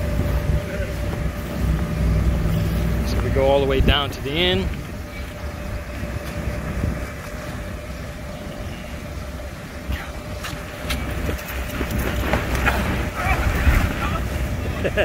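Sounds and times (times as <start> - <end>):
electric air blower humming: 0.0 - 13.2
wind rumble on microphone: 0.0 - 15.0.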